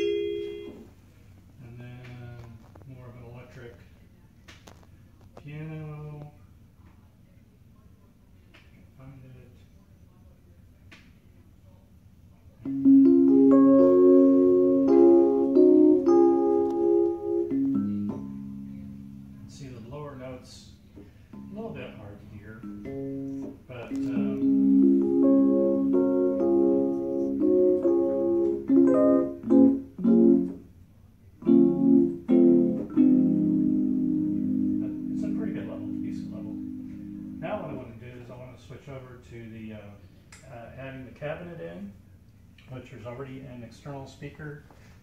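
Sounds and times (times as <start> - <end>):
electric keyboard notes: 0.0 - 0.9, 12.6 - 19.8, 21.3 - 30.7, 31.4 - 38.0.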